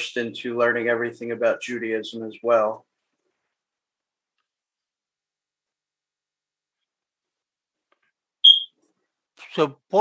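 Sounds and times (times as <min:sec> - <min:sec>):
high-pitched electronic beep: 0:08.4 - 0:08.7.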